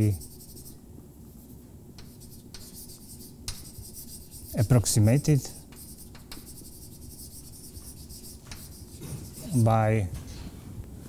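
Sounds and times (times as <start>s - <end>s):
chalk scratching on blackboard: 0.0s - 9.7s
chalk tap: 2.0s - 4.6s, 5.7s - 9.4s.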